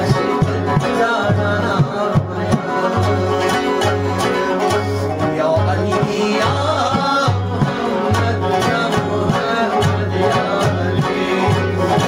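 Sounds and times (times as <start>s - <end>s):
frame drum beating: 0.0s - 12.0s
rubab plucked rhythmically: 0.0s - 12.0s.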